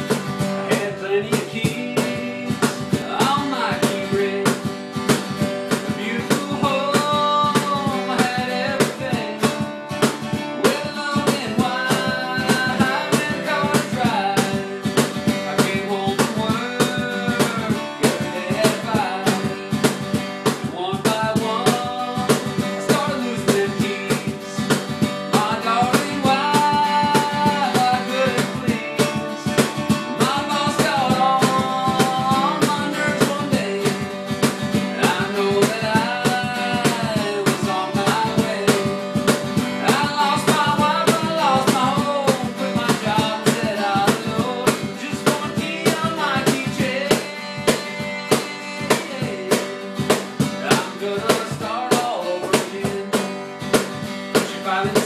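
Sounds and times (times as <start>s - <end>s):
acoustic guitar strumming: 0.0s - 55.0s
cajon beat: 0.0s - 55.0s
man singing: 0.0s - 55.0s.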